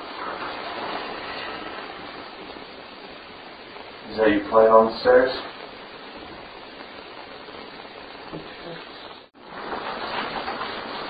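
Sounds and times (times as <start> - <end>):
steady recording hiss: 0.0 - 11.0.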